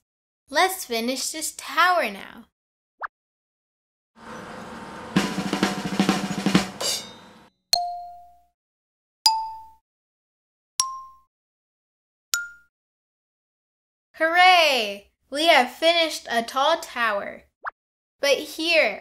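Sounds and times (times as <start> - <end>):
rattling drum roll: 4.2 - 7.5.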